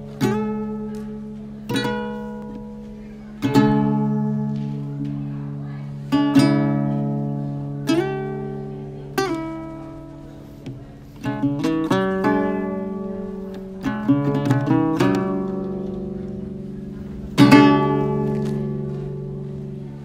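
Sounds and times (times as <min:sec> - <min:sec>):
acoustic guitar strummed slowly: 0:00.0 - 0:20.0.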